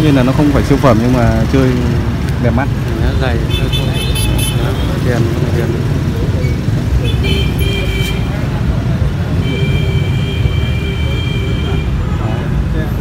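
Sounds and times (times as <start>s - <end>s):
low rumble of road traffic: 0.0s - 13.0s.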